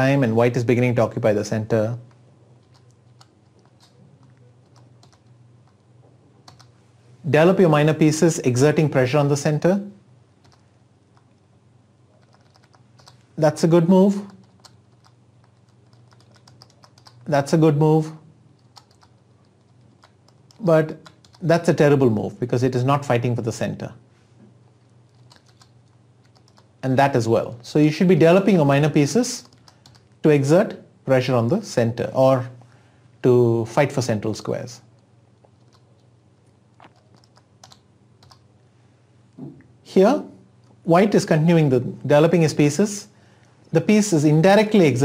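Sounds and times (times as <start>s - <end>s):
low steady hum: 0.0s - 45.0s
computer keys clicking: 2.0s - 5.8s, 6.4s - 6.8s, 10.4s - 11.4s, 12.2s - 13.3s, 14.2s - 17.3s, 18.6s - 21.5s, 25.1s - 26.7s, 29.4s - 30.1s, 35.0s - 36.1s, 36.8s - 38.4s.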